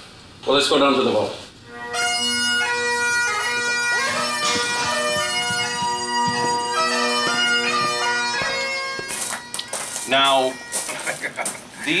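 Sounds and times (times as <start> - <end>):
bagpipe music over drone: 1.7 - 11.2.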